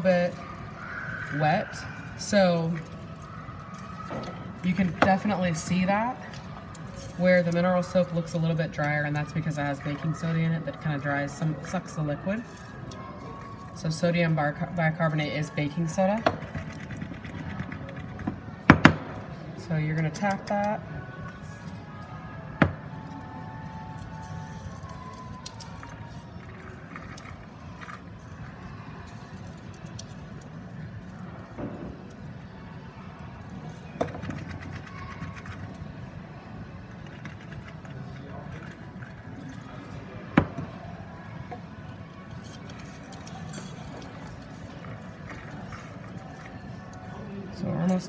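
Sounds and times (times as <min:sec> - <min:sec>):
murmur of voices: 0:00.0 - 0:48.0.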